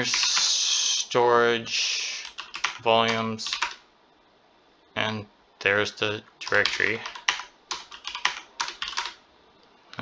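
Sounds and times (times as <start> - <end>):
computer keyboard typing: 0.0 - 0.5, 2.2 - 3.8, 6.4 - 9.2.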